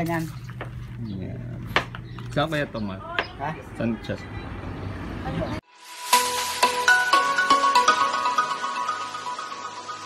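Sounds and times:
outdoor background noise: 0.0 - 6.0
background music: 5.7 - 10.0.

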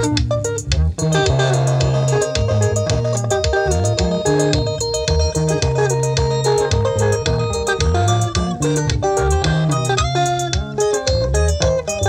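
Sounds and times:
live rock band instrumental: 0.0 - 12.0
long low bass notes: 0.0 - 12.0.

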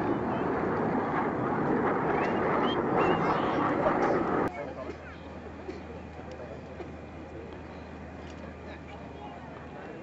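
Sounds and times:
distant jet engine rumble: 0.0 - 9.8.

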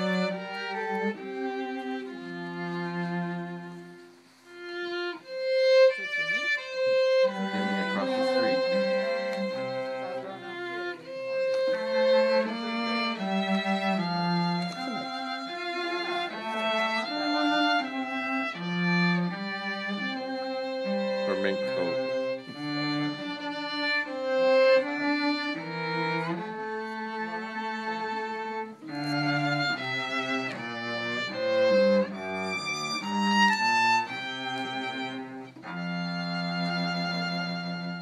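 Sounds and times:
violin music: 0.0 - 38.0.

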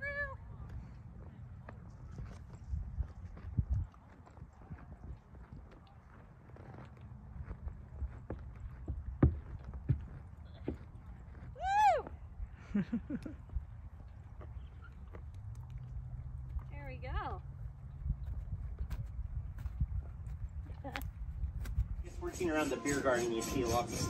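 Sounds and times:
low outdoor rumble: 0.0 - 23.9
hooves thudding on grass: 0.5 - 12.2, 13.1 - 24.0.

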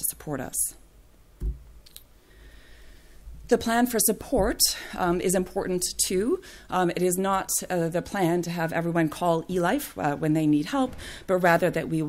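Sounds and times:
soft low thump: 1.4 - 1.7.

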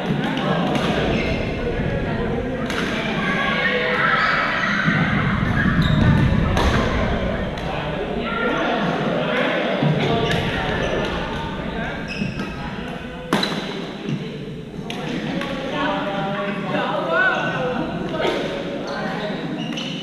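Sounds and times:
players' voices: 0.0 - 20.0.

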